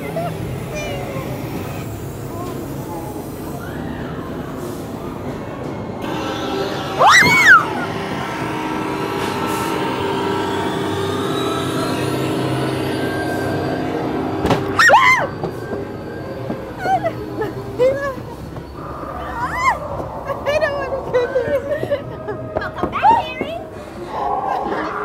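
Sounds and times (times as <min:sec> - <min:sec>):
droning eerie soundtrack: 0:00.0 - 0:25.0
high-pitched screams: 0:06.1 - 0:15.4, 0:18.8 - 0:20.9.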